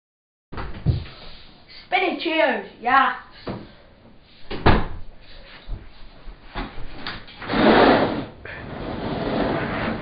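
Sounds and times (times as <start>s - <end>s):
chair scraping: 6.8s - 10.0s.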